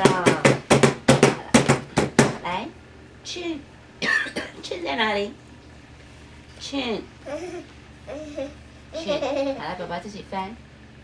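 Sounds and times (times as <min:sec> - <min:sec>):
woman laughing: 0:09.0 - 0:09.9.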